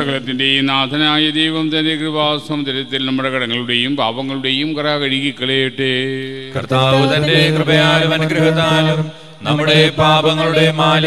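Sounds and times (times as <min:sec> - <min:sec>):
man chanting a prayer: 0:00.0 - 0:11.0.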